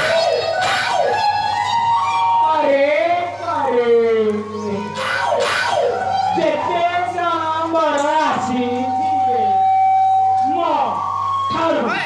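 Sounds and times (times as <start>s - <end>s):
folk theatre music over loudspeakers: 0.0s - 12.0s.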